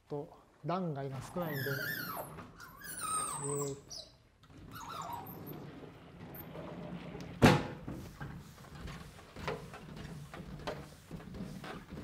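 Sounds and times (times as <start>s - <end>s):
sliding panels rumbling in frame: 5.3s - 12.0s.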